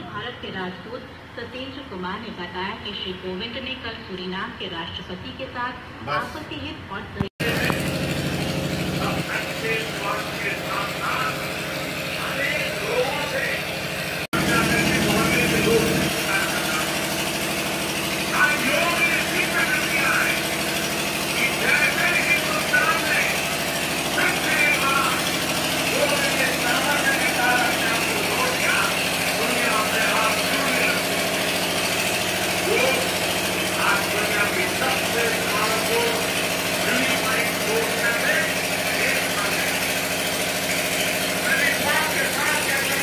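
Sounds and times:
vehicle engine idling: 7.4 - 43.0.

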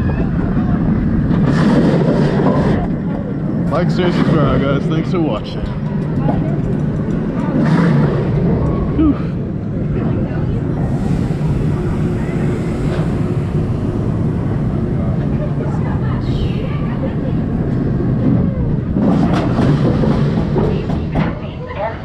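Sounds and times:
roller coaster wheels rumbling on rail: 0.0 - 22.0.

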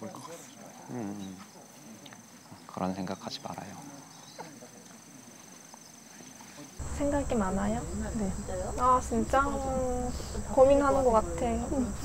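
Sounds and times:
people talking: 6.8 - 12.0.

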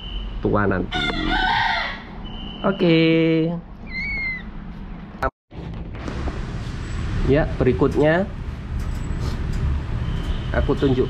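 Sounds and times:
kitten meowing: 3.8 - 4.5.

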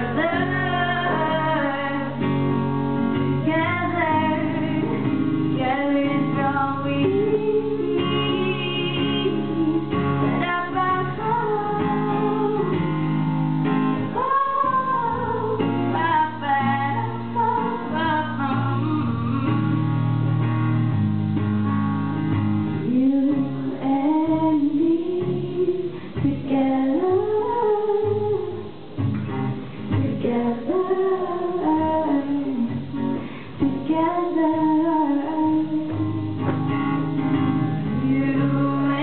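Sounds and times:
woman singing: 0.0 - 2.4, 3.4 - 13.3, 14.0 - 20.0, 22.8 - 28.8, 29.9 - 36.6, 37.8 - 39.0
acoustic guitar chords: 0.0 - 39.0.

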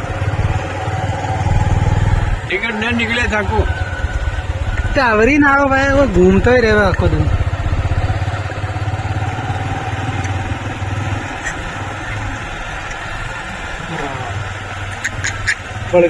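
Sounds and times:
low engine hum: 0.0 - 16.0.

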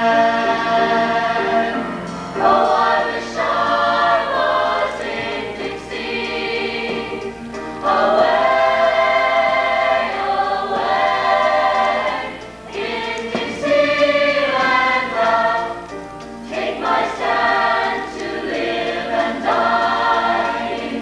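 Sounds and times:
youth choir singing: 0.0 - 21.0.

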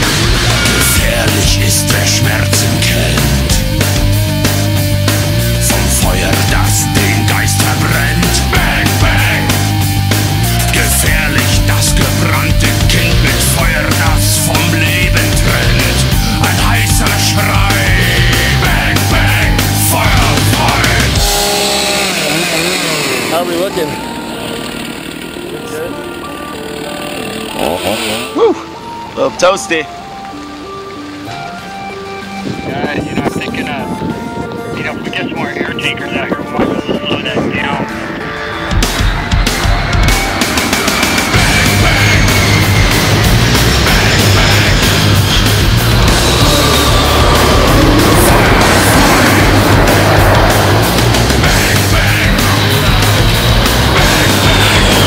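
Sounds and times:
indistinct voices: 0.0 - 4.2, 5.4 - 29.8, 32.7 - 55.0
small engine running: 0.0 - 28.8, 38.8 - 55.0
music: 0.0 - 55.0
low-flying jet passing over: 32.4 - 55.0.

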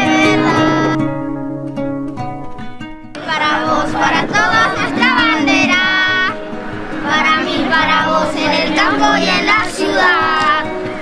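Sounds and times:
children singing: 0.0 - 1.0, 3.2 - 11.0
instrumental music: 0.0 - 11.0.

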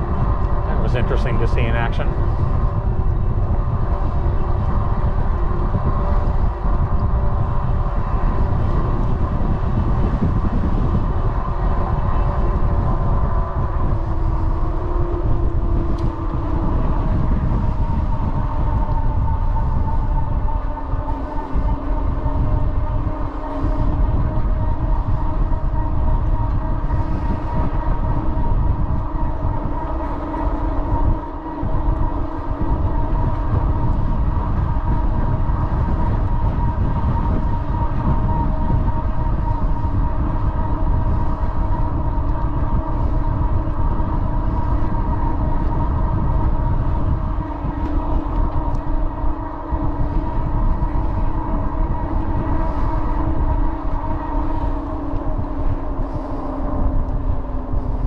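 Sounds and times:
steady pitched hum: 0.0 - 58.0
wind buffeting microphone: 0.0 - 58.0.

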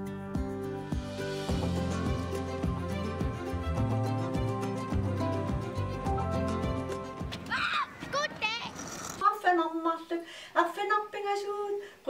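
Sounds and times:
child calling out: 7.5 - 9.0
woman talking: 8.1 - 11.9.

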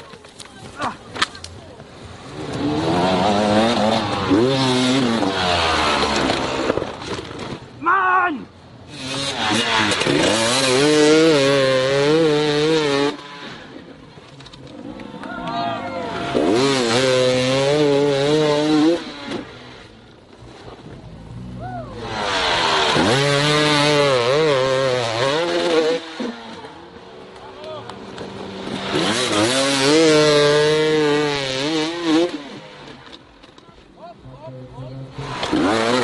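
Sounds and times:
dirt bike engines revving: 0.0 - 36.0.

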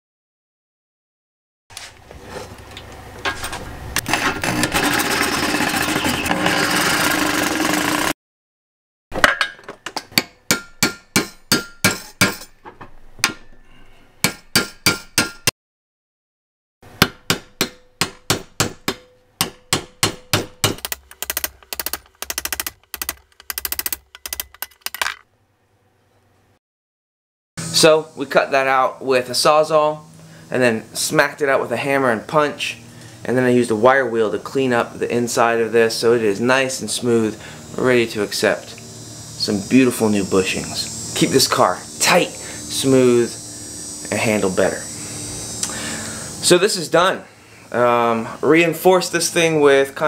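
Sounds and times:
reciprocating saw cutting steel: 4.1 - 8.2
hammer striking metal punch: 9.1 - 13.6, 14.2 - 15.5, 16.9 - 22.2.

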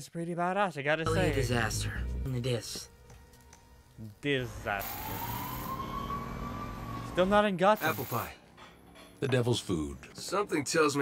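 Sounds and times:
emergency vehicle siren wailing: 4.4 - 7.6.

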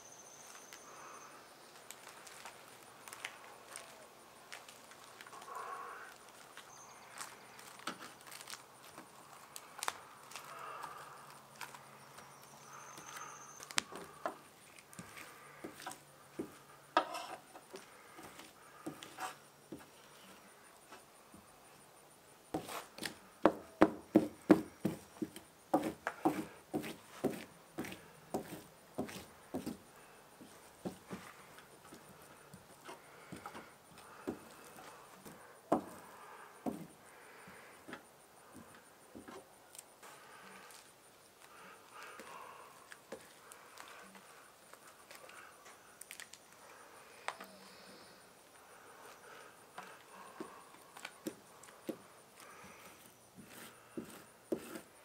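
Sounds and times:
brush tapping on panel: 23.4 - 29.8.

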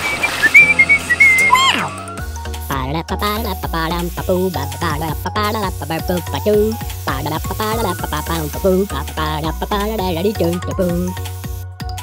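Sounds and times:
comic whistle sliding down: 0.0 - 2.2
background music: 0.0 - 12.0.

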